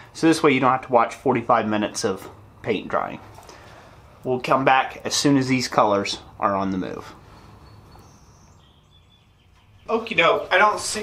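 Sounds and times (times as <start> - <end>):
thin high tones: 6.8 - 11.0
man's voice: 9.9 - 11.0.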